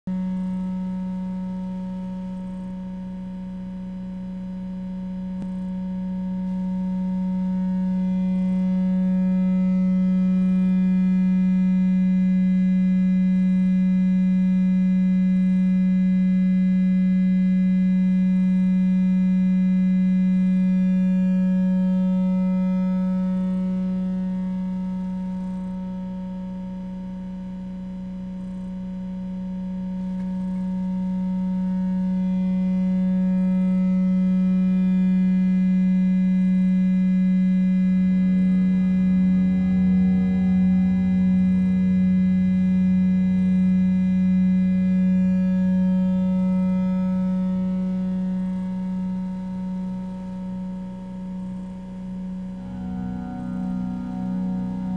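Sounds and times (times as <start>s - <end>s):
electronic drone low tone: 0.1s - 54.9s.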